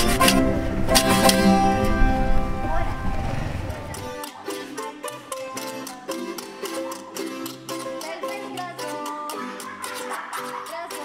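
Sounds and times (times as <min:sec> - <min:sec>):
acoustic string ensemble: 0:00.0 - 0:11.0.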